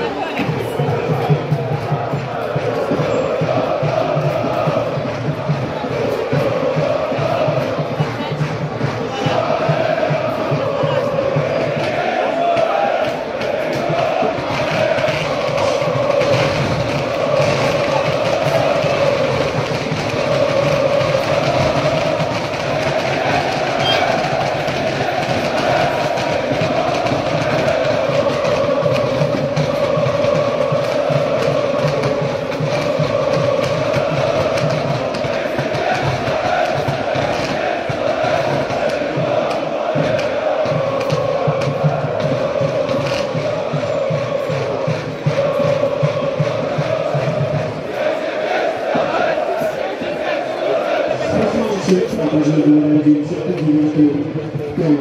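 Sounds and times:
crowd chanting in unison: 0.0s - 55.0s.

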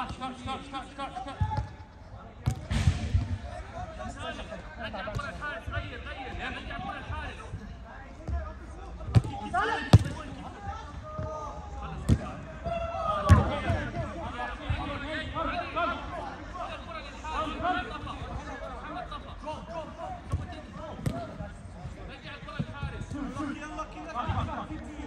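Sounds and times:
football being kicked: 2.4s - 3.4s, 9.9s - 10.2s, 13.2s - 14.0s, 20.3s - 22.0s
players shouting: 9.2s - 25.0s.

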